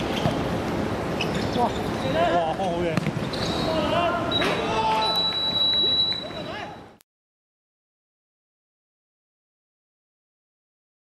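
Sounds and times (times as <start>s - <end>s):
ball kick thuds: 2.9s - 3.3s
players shouting: 3.5s - 5.4s.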